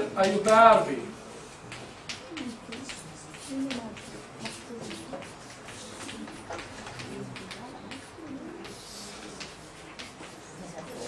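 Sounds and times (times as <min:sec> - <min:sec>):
low murmur in a room: 0:00.0 - 0:11.0
taps of writing on a board: 0:01.6 - 0:11.0.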